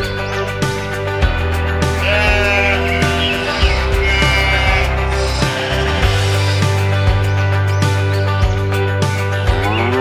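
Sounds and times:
background music: 0.0s - 10.0s
sheep bleating: 1.9s - 6.6s.

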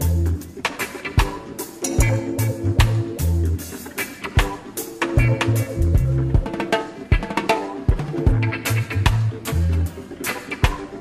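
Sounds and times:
live reggae band playing: 0.0s - 11.0s.

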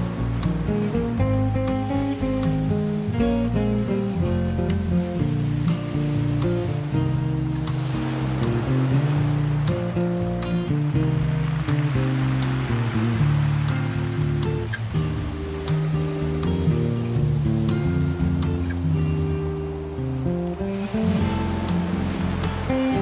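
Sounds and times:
classical guitar melody: 0.0s - 23.0s
ocean surf: 0.0s - 23.0s.

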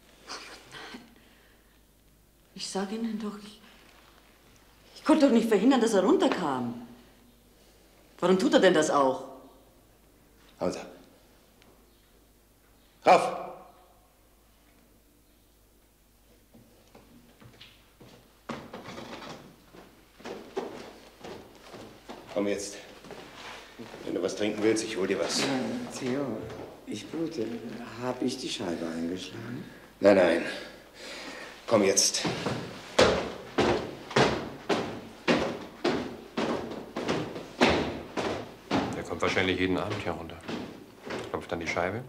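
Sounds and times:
heavy footsteps on wooden stairs: 17.1s - 27.4s, 31.7s - 41.5s
scuffling and shuffling: 17.1s - 28.0s, 31.7s - 41.5s.

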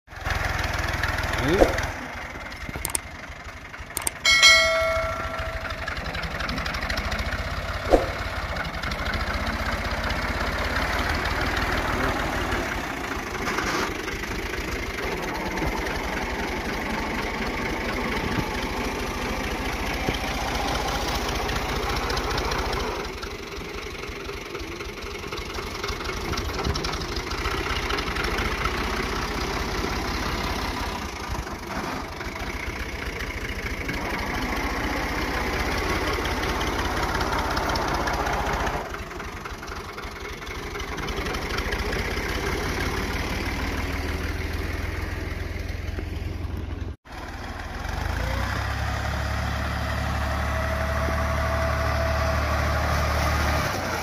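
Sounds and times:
tractor diesel engine running: 0.1s - 54.0s.

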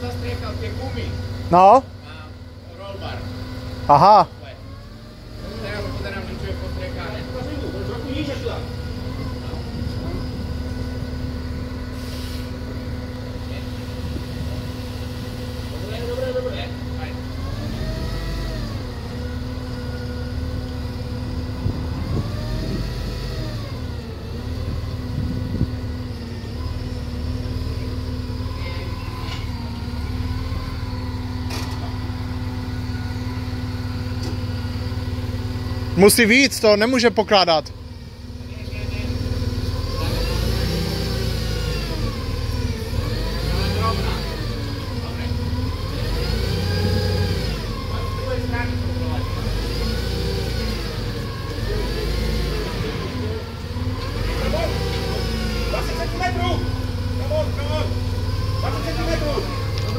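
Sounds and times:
forklift engine revving: 0.0s - 59.9s.

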